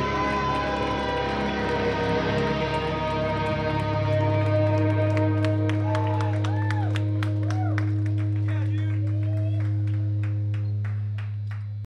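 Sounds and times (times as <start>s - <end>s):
sharp hand claps: 0.0s - 11.8s.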